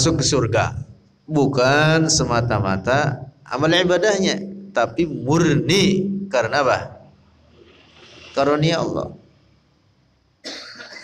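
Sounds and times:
man coughing: 10.4s - 11.0s.

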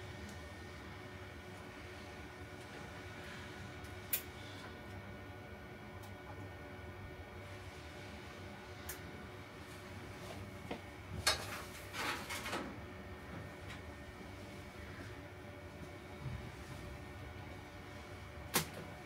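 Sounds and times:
equipment hum: 0.0s - 19.0s.

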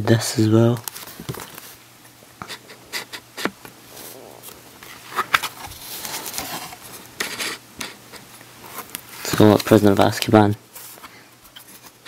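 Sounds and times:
book pages rustling: 0.8s - 1.8s, 3.4s - 12.0s.

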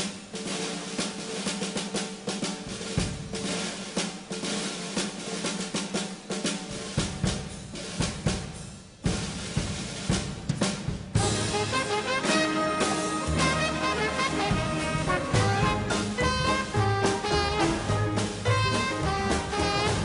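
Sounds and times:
jazz drum kit solo: 0.0s - 20.0s
snare rolls and rimshots: 0.0s - 20.0s.

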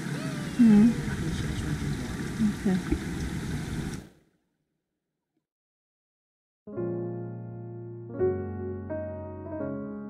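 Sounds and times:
creek rushing: 0.0s - 4.1s.

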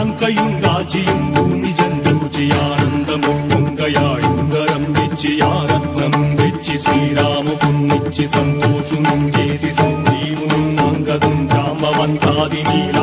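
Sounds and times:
hand drum beat: 0.0s - 13.0s
sharp percussion strokes: 0.0s - 13.0s
voices singing: 0.0s - 13.0s.

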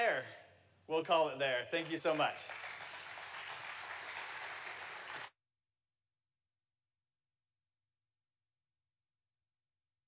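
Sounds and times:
audience applauding: 1.8s - 5.4s.

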